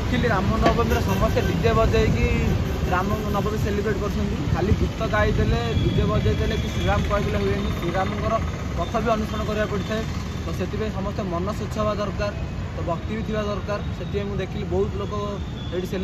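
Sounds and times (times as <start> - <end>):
man talking: 0.0 - 16.0.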